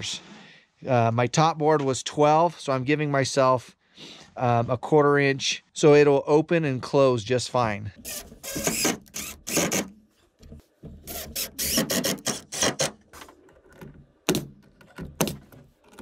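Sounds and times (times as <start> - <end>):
cordless drill driving screws: 8.0 - 10.0, 11.0 - 13.2
pneumatic nailer shots: 8.0 - 10.0, 11.0 - 13.3.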